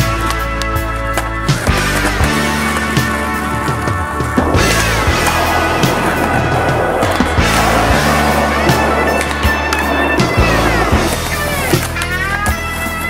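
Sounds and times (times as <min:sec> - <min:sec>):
skateboard pops and landings: 0:00.0 - 0:12.2
rock music: 0:00.0 - 0:13.0
skateboard wheels rolling on concrete: 0:00.0 - 0:13.0.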